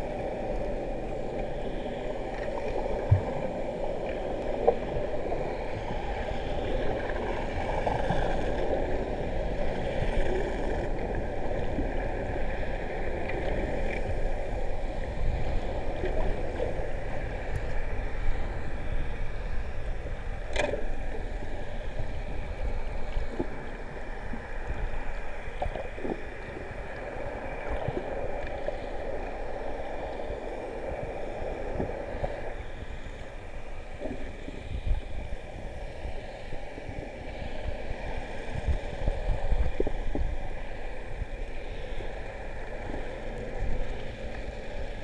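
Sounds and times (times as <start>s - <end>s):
faint steady hum: 0.0s - 45.0s
underwater rumble: 0.0s - 45.0s.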